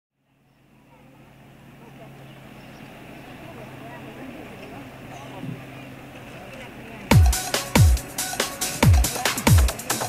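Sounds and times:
distant voices: 0:00.2 - 0:10.0
low engine hum: 0:00.2 - 0:10.0.

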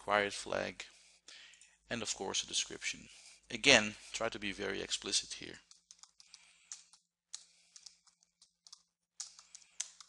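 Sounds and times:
computer keyboard typing: 0:05.6 - 0:10.0.

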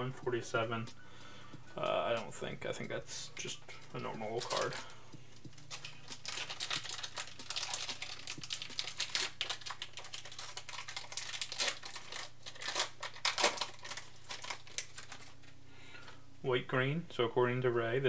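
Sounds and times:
cards clicking and rustling: 0:03.5 - 0:15.6
foil wrapper crinkling: 0:03.5 - 0:15.6.

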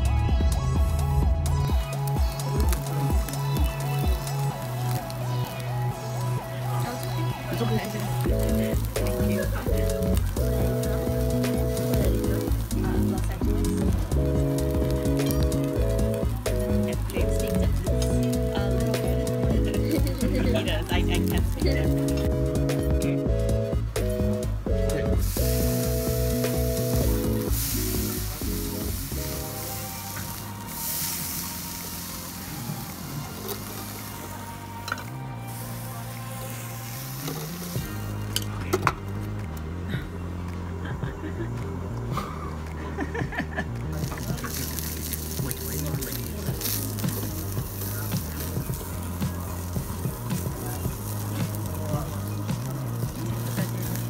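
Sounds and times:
background music: 0:00.0 - 0:54.0
meat sizzling on a grill: 0:00.8 - 0:23.6, 0:24.4 - 0:38.6, 0:43.8 - 0:54.0.

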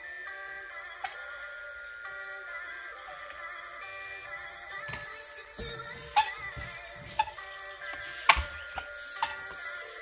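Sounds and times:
background music: 0:00.0 - 0:10.0
bicycle landing on wooden pallets: 0:08.3 - 0:09.4.

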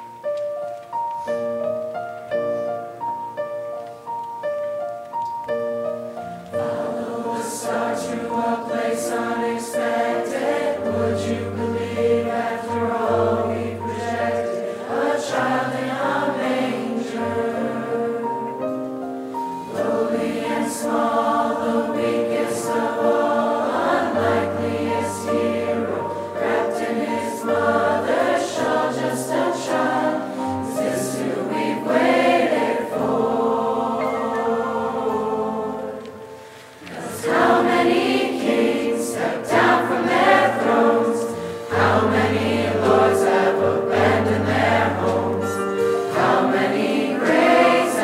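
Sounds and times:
choir singing in parts: 0:06.5 - 0:48.0.

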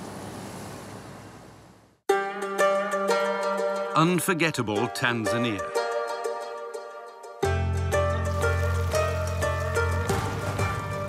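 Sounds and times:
truck driving away: 0:08.3 - 0:11.0.

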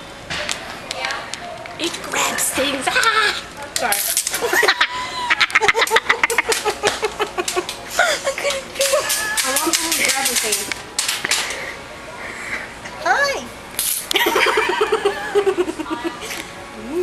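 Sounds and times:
woman laughing: 0:04.4 - 0:10.2, 0:14.1 - 0:16.4.

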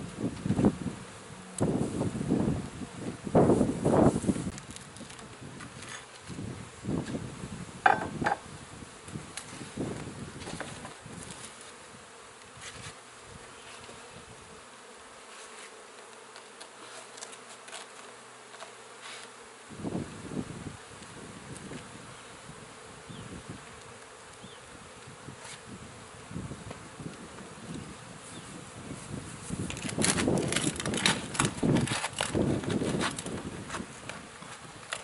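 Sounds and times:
bees buzzing: 0:00.0 - 0:35.0
knocks and scrapes of siding: 0:07.8 - 0:08.4, 0:09.4 - 0:11.8, 0:12.5 - 0:14.1, 0:15.2 - 0:19.4, 0:29.5 - 0:35.0.

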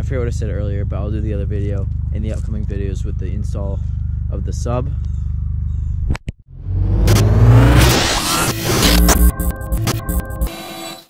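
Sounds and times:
car engine revving: 0:06.5 - 0:10.5
crackling glitch noise: 0:06.6 - 0:11.0.

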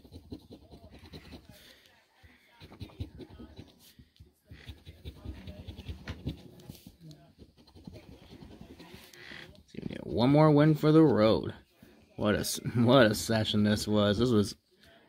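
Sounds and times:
coin scratching paper ticket: 0:00.0 - 0:01.6, 0:02.6 - 0:03.8, 0:04.6 - 0:10.2.

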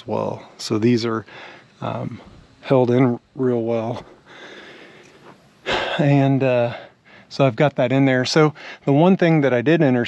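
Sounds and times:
man speaking: 0:00.0 - 0:04.1, 0:05.7 - 0:10.0.

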